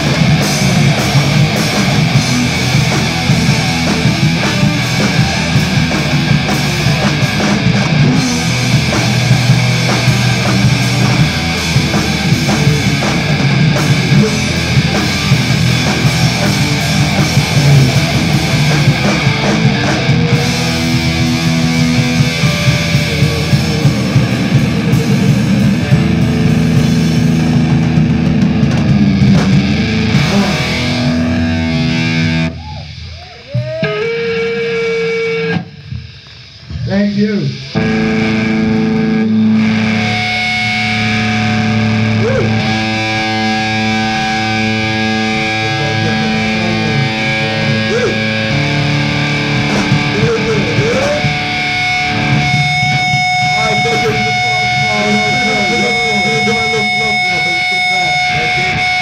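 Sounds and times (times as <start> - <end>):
fast drums: 0.0 - 34.5, 35.6 - 59.0
bass guitar: 0.0 - 59.0
distorted electric guitars: 0.0 - 59.0.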